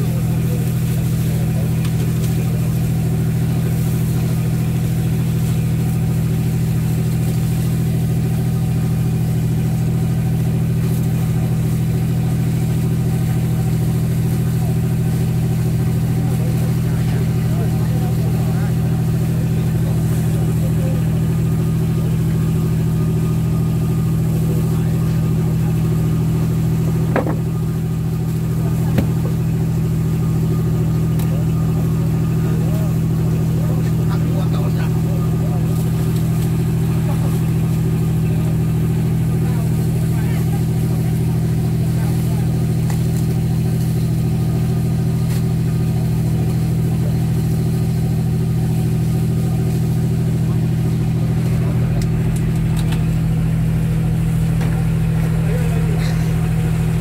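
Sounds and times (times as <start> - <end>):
boat engine running: 0.0 - 57.0
short knocks: 27.1 - 27.5.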